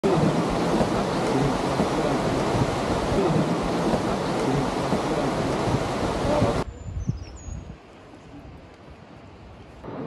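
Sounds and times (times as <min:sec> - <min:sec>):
loud steady rushing noise: 0:00.0 - 0:06.6
forest ambience: 0:00.0 - 0:10.0.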